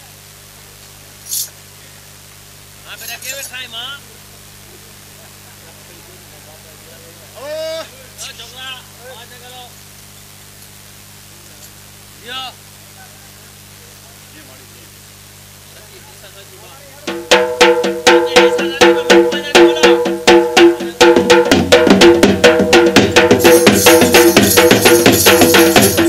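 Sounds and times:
barrel drums struck with sticks: 0:17.1 - 0:26.0.

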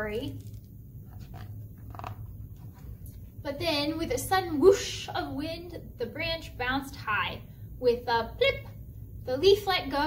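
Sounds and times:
low room hum: 0:00.0 - 0:10.0
book pages turning: 0:00.3 - 0:03.0.

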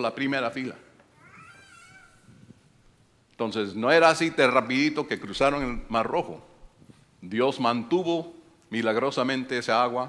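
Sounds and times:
faint high-pitched cry: 0:01.1 - 0:02.6.

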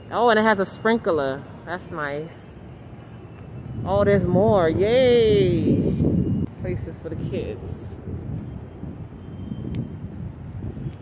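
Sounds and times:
distant city traffic: 0:00.0 - 0:11.0
wind on microphone: 0:03.5 - 0:11.0.

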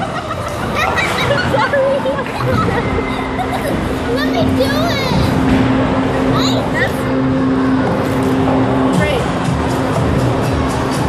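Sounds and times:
background music: 0:00.0 - 0:11.0
voices in a busy room: 0:00.0 - 0:11.0.

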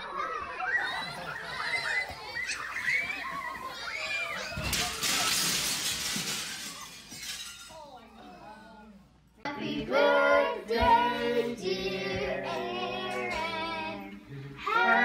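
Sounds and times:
young children shrieking: 0:00.0 - 0:05.4.

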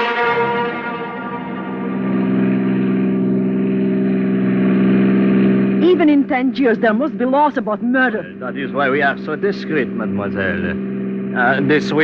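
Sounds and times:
car engine droning: 0:00.0 - 0:12.0.

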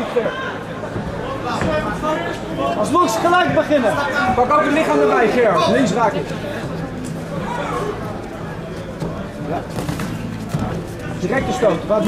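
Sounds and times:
voices calling out in hall: 0:00.0 - 0:12.0.

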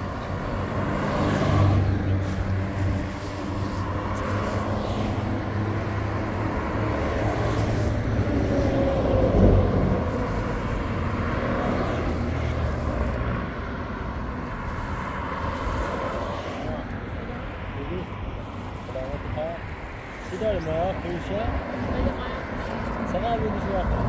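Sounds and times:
low engine hum: 0:00.0 - 0:17.6
vehicles passing on highway: 0:00.0 - 0:24.0.

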